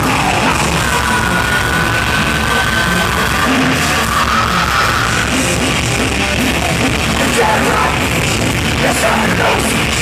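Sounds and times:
heavy rock band playing: 0.0s - 10.0s.

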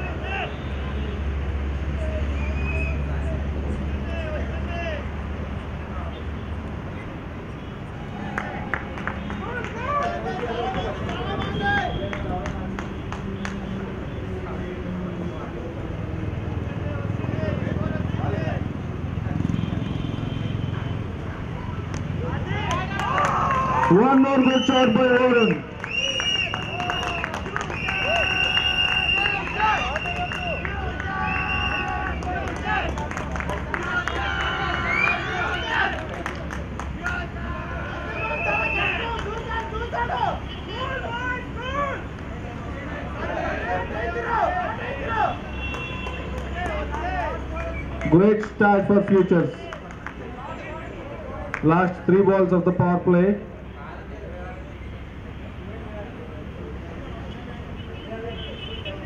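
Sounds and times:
loud drawn-out shout: 0.0s - 0.6s, 22.2s - 33.0s, 33.6s - 36.2s, 37.0s - 42.1s, 42.7s - 47.9s
players talking and calling: 0.0s - 59.0s.

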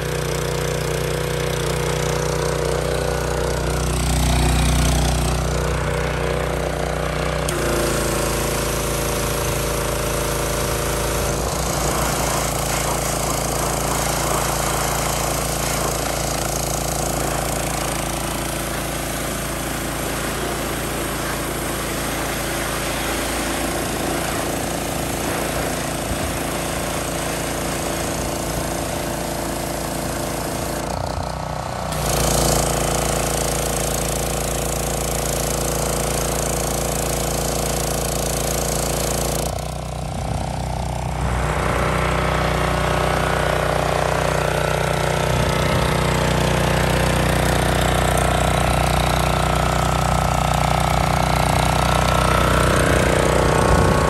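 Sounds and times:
high-pressure water jet hissing: 0.0s - 30.9s, 31.9s - 54.0s
small engine running: 0.0s - 54.0s.

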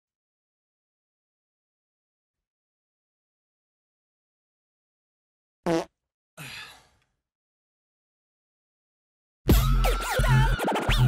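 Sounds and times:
man sighing: 6.4s - 7.0s.

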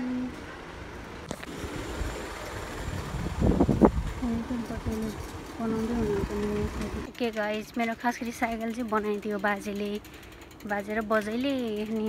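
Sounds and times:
wind rumble on microphone: 1.3s - 7.1s.

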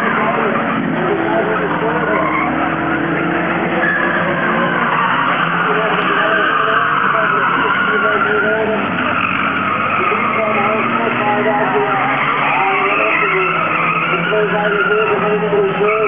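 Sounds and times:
racing car engines revving: 0.0s - 16.0s.

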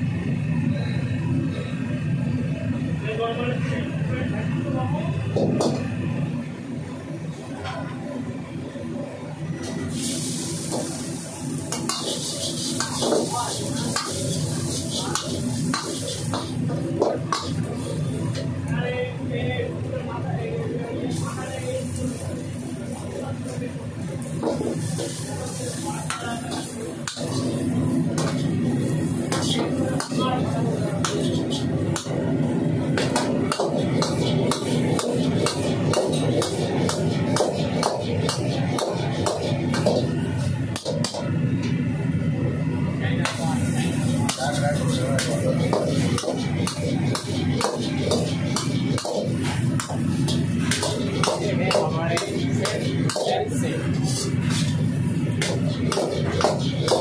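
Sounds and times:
ladle scraping and clanging wok: 9.9s - 18.4s, 24.3s - 41.2s, 43.3s - 57.0s.

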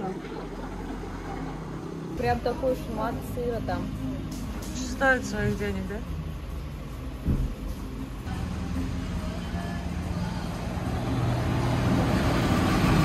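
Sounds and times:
bus engine running: 0.0s - 13.0s
brief knock: 7.2s - 7.6s.

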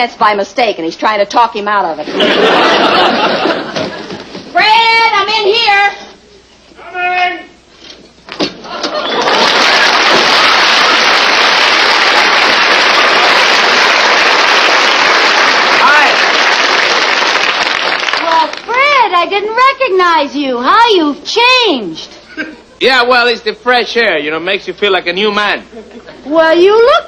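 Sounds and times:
audience applauding: 8.8s - 18.7s.

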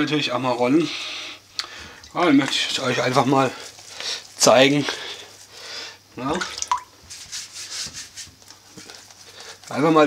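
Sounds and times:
hands rubbing dough: 2.4s - 5.6s, 6.4s - 10.0s.

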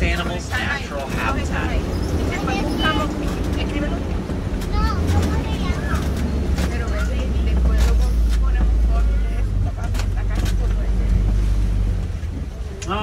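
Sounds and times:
truck engine rumble: 0.0s - 13.0s.

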